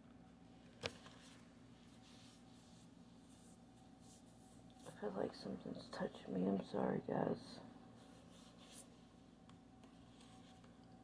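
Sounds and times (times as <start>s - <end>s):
faint soft rustles: 0.8s - 6.0s, 7.4s - 9.3s, 9.9s - 10.9s.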